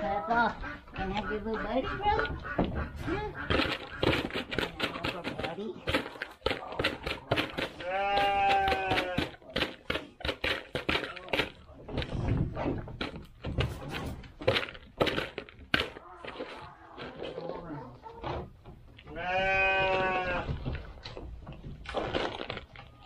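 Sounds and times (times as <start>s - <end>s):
turkeys pecking in plastic bowl: 0.0s - 23.0s
goat bleating: 7.8s - 9.4s, 19.1s - 20.6s.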